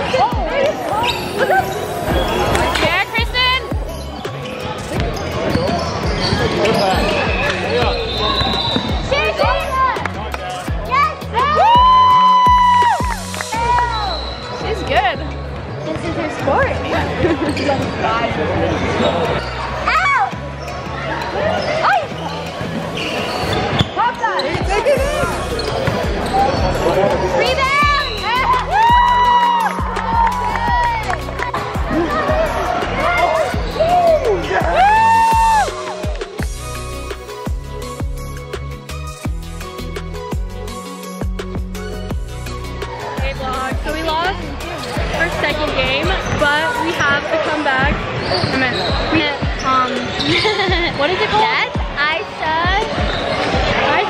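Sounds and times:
sneakers squeaking: 0.0 - 10.1, 13.6 - 39.3, 40.3 - 54.0
voices of players: 0.0 - 11.6, 42.9 - 54.0.

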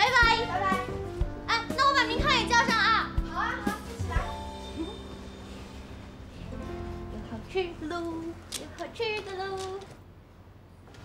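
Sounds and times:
light background music: 0.0 - 9.9
women's high-pitched voices: 7.2 - 10.0.

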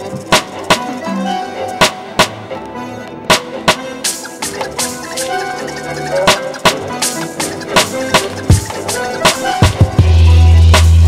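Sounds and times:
hip-hop instrumental beat: 0.0 - 11.0.

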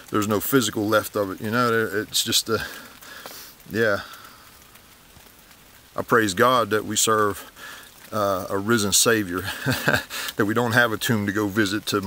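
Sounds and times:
light rain pattering: 0.0 - 12.0
water drips: 0.0 - 12.0.

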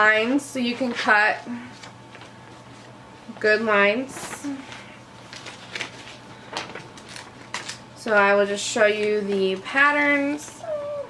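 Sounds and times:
wrapping paper rustling: 0.8 - 7.9.

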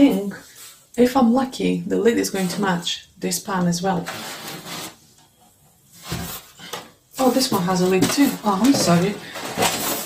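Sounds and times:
cardboard scraping against cardboard: 4.0 - 5.0.

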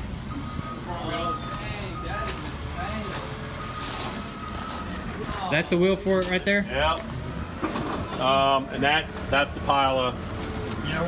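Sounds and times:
reversing alarm beeping: 0.0 - 6.1.

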